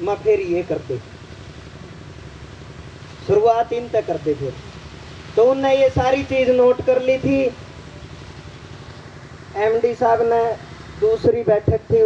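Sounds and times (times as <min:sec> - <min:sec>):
low engine-like hum: 0:00.0 - 0:12.0.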